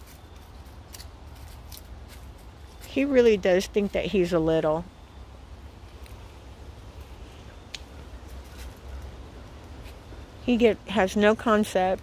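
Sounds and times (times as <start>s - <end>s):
steps on wood and leaves: 0.0s - 3.2s, 7.8s - 10.1s.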